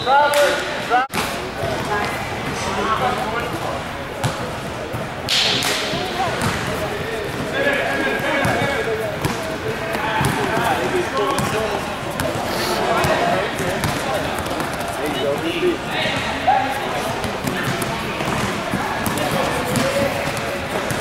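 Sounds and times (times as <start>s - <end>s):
chatter and calls of people: 0.0s - 21.0s
basketball bouncing on gym floor: 6.3s - 6.8s, 17.2s - 21.0s.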